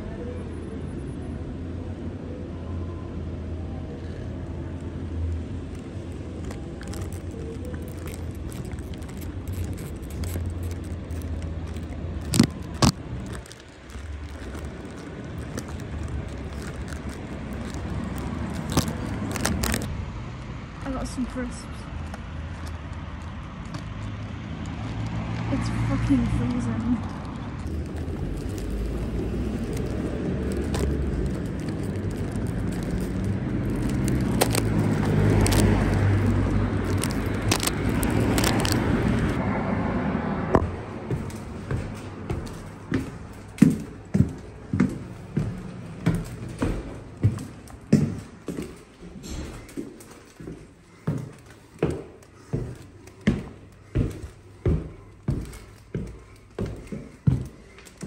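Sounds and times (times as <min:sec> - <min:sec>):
traffic rumble: 0:00.0 - 0:58.0
footsteps on hard floor: 0:40.6 - 0:58.0.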